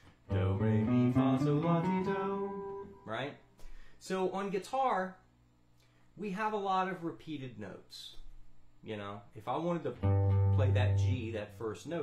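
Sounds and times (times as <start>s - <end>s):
guitar playing ascending scale: 0.3s - 3.2s, 10.0s - 11.6s.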